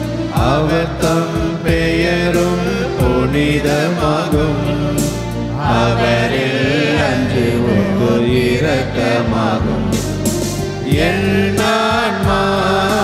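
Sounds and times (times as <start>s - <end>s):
sustained instrumental accompaniment: 0.0s - 13.0s
person singing a hymn with vibrato: 0.2s - 10.2s, 10.8s - 13.0s.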